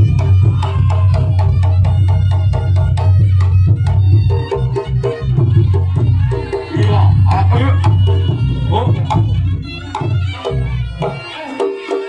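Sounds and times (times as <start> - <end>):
hand drums beating: 0.0 - 12.0
pitched percussion melody: 0.0 - 12.0.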